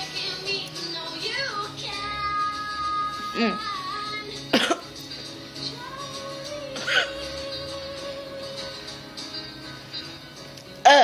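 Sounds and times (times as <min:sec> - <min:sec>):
background music: 0:00.0 - 0:11.0
woman singing high notes: 0:03.2 - 0:03.8.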